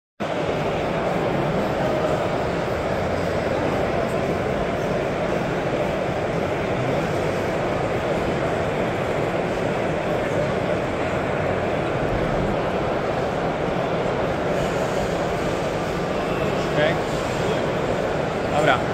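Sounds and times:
crowd chatter in a hall: 0.2 - 18.9.

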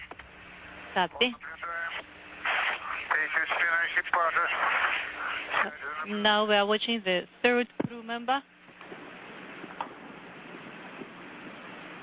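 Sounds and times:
steady hum: 0.0 - 12.0
man speaking over radio: 1.0 - 6.4.

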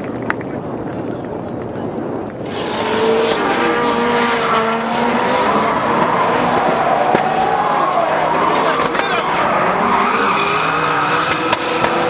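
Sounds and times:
car engines at high revs: 2.3 - 12.0
tires squealing and skidding: 2.5 - 12.0.

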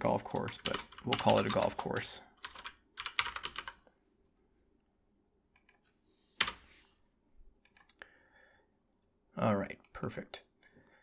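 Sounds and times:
computer keyboard typing: 0.1 - 3.8, 5.5 - 5.8, 6.4 - 6.6, 7.6 - 8.0.

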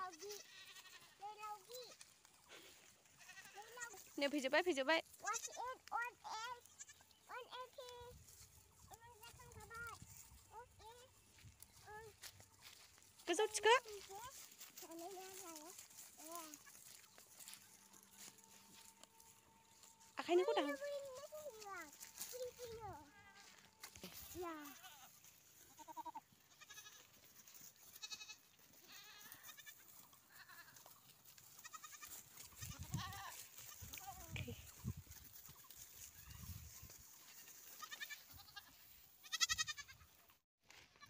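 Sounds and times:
goats bleating: 0.0 - 4.2, 5.2 - 7.2, 13.4 - 34.8, 35.5 - 40.2.

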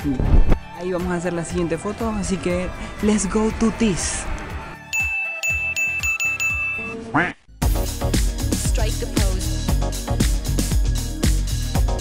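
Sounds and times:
bright high dings: 4.9 - 7.0
upbeat dance music: 8.0 - 12.0.

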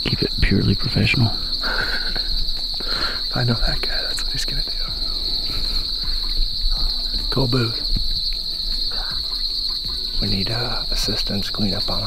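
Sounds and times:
crickets trilling: 0.0 - 12.0.

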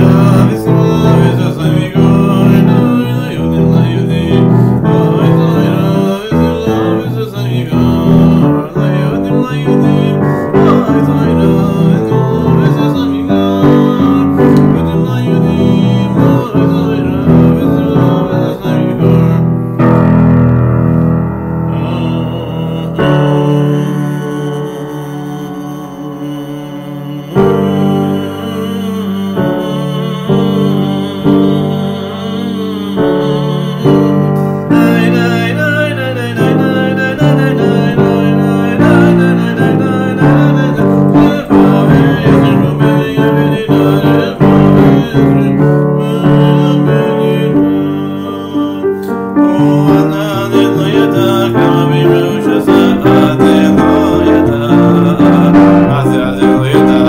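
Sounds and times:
solo piano playing chords: 0.0 - 57.0.

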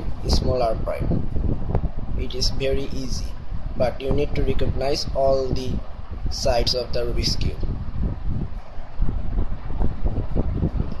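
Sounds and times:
low uneven microphone rumble: 0.0 - 11.0.

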